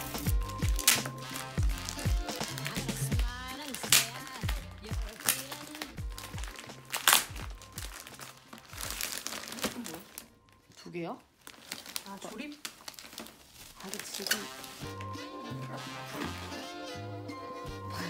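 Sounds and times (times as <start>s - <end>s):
background music: 0.0s - 11.2s, 13.8s - 18.0s
plastic film crinkling: 0.0s - 16.6s.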